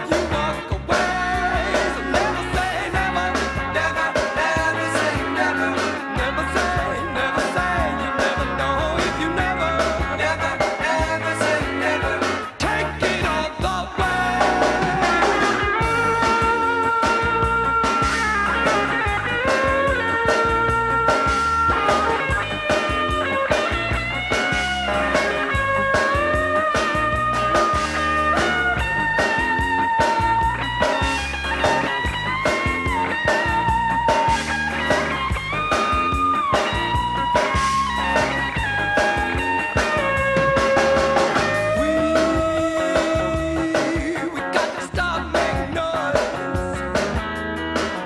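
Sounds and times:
drums and bass beat: 0.0s - 48.0s.

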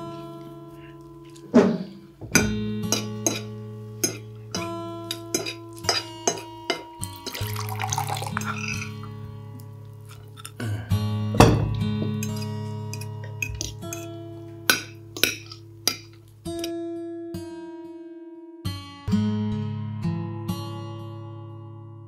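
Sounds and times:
acoustic guitar music: 0.0s - 22.0s
water poured into a glass: 7.1s - 9.0s.

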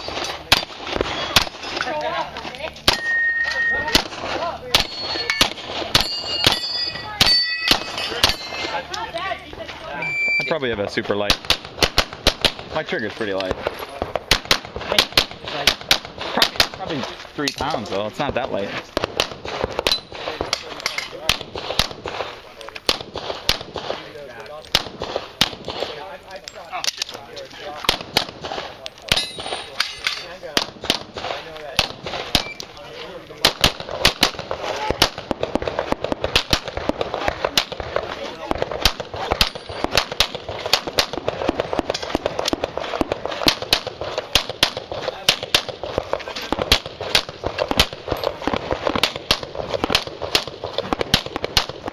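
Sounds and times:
pistol shots: 0.0s - 1.8s, 2.8s - 8.8s, 11.2s - 17.1s, 17.8s - 26.2s, 27.8s - 32.7s, 33.4s - 51.9s.

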